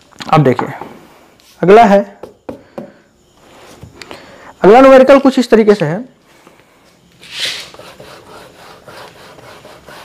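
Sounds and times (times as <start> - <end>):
duster rubbing on whiteboard: 7.2 - 10.0.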